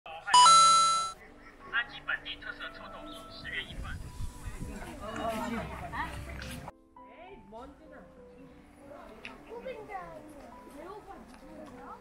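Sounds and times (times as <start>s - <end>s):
background music with held tones: 0.1s - 12.0s
two-note doorbell chime: 0.4s - 1.2s.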